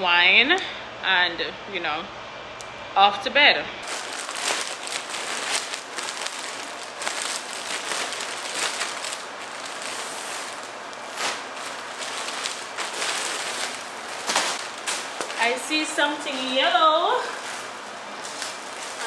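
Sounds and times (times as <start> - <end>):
plastic mailer bag crinkling: 3.8 - 19.0.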